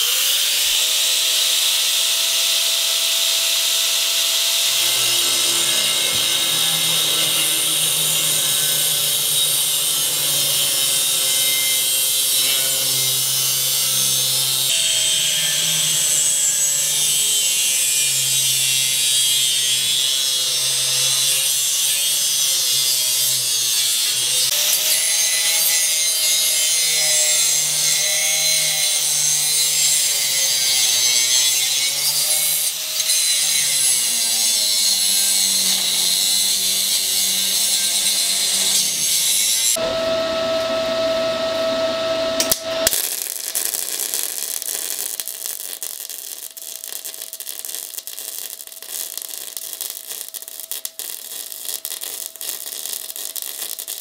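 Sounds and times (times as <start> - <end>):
angle grinder cutting steel: 0.0 - 54.0.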